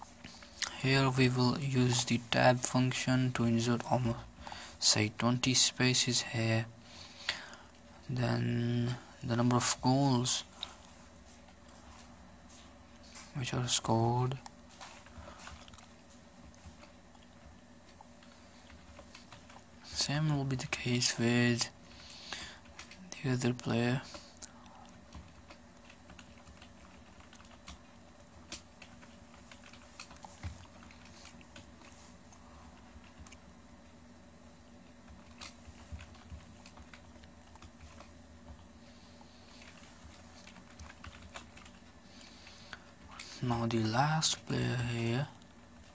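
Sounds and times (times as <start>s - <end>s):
typing on computer keyboard: 25.1s - 31.7s, 35.1s - 38.6s, 39.5s - 41.8s.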